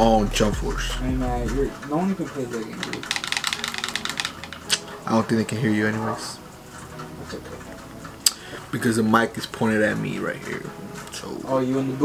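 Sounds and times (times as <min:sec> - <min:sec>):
rapid light clicks: 0:02.8 - 0:04.8.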